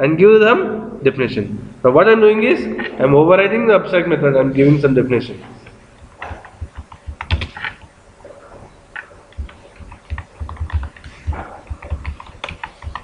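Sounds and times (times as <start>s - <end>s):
keyboard typing: 6.0s - 7.9s, 8.9s - 13.0s.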